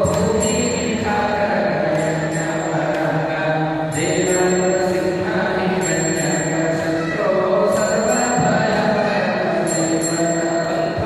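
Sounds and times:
faint high metallic ringing: 0.0 - 11.0
mantra chanting in held tones: 0.0 - 11.0.

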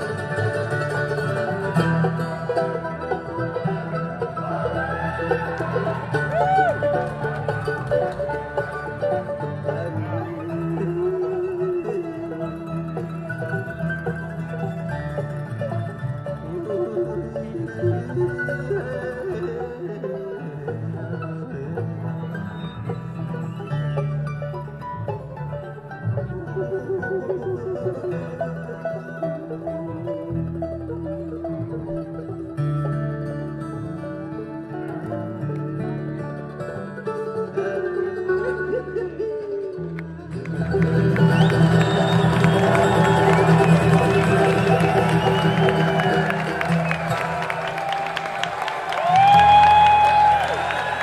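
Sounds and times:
audience cheering and applause: 0.0 - 10.5, 40.3 - 51.0
acoustic guitar: 0.0 - 51.0
fiddle: 0.0 - 51.0
mandolin: 0.0 - 51.0
upright bass: 0.0 - 51.0
loud whoop: 4.4 - 8.0, 41.0 - 51.0.

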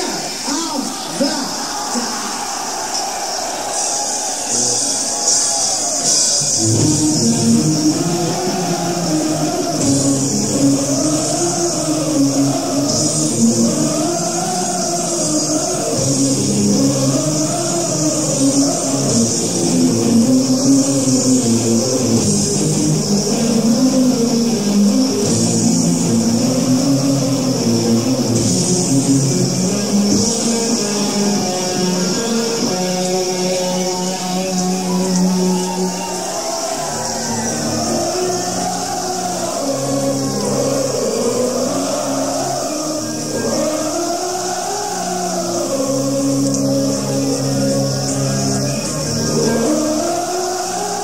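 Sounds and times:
heavy metal band playing live: 3.8 - 51.0.

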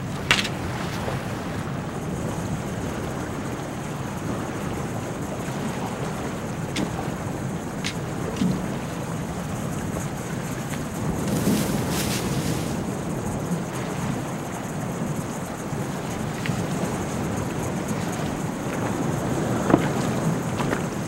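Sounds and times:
coastal wind: 0.0 - 21.0
surf: 0.0 - 21.0.

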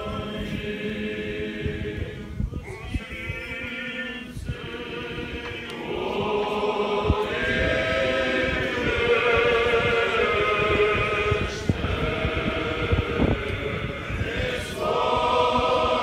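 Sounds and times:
choir chanting a cappella: 0.0 - 16.0.

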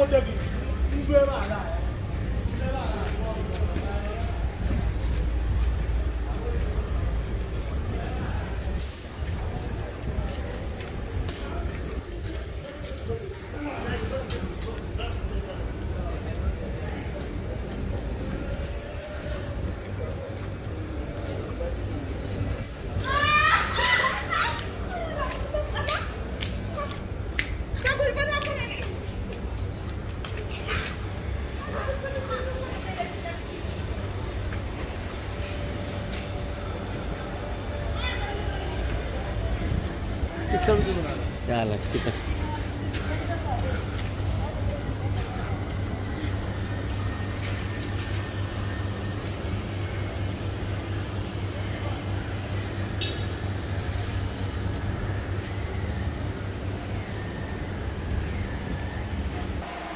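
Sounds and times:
street low hum: 0.0 - 59.9
shrill cry: 23.0 - 25.2.

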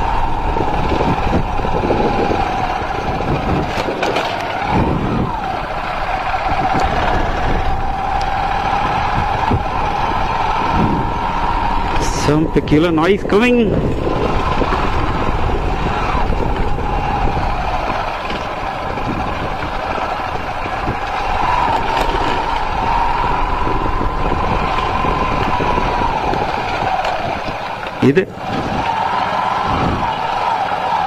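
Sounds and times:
motorcycle engine running: 0.0 - 31.0
road noise on dirt road: 0.0 - 31.0.

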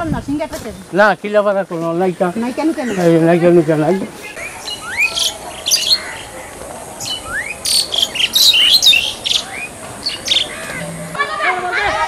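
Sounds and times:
birds chirping: 0.6 - 11.4
rising whistled bird calls: 4.4 - 6.3, 7.0 - 10.8.

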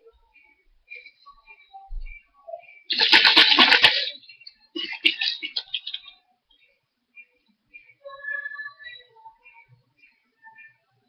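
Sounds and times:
plastic bottle and bag rustling: 2.9 - 6.1.

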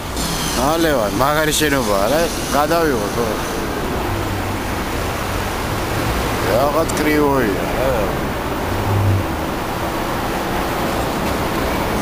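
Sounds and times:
city street traffic roar: 0.0 - 12.0.

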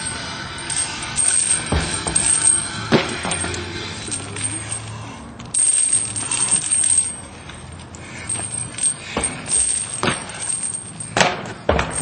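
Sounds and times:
heavy metal chains rattling: 0.0 - 12.0.

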